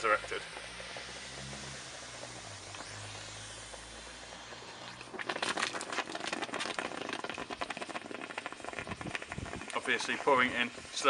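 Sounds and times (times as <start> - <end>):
low hum: 0.0 - 6.1
chemical reaction hissing: 0.0 - 11.0
fizzing crackle of bubbles: 0.0 - 11.0.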